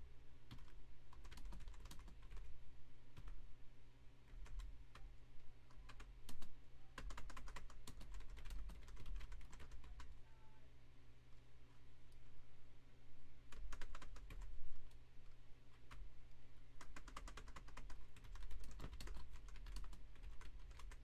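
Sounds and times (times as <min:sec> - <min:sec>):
typing on computer keyboard: 0:00.5 - 0:02.5, 0:03.2 - 0:03.4, 0:04.3 - 0:05.1, 0:05.7 - 0:10.2, 0:13.5 - 0:14.5, 0:15.7 - 0:16.0, 0:16.8 - 0:21.0.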